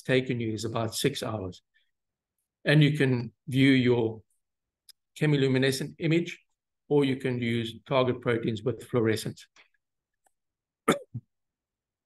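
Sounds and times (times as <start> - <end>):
man coughing: 10.9 - 11.2.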